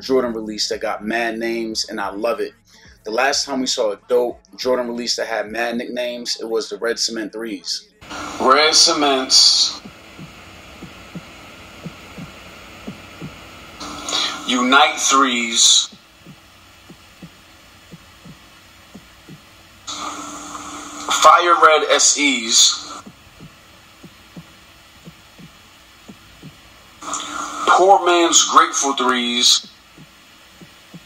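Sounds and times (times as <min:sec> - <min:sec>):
low steady hum: 0:07.9 - 0:31.0
low thumping heartbeat-like beat: 0:08.0 - 0:14.7, 0:15.8 - 0:20.9, 0:22.9 - 0:27.5, 0:29.6 - 0:31.0.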